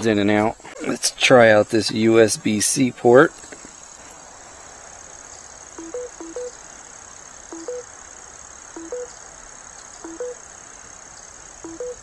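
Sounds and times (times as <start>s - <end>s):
two-note electronic charging beep: 5.8s - 6.6s, 7.6s - 7.8s, 8.8s - 9.1s, 10.0s - 10.4s, 11.7s - 12.0s.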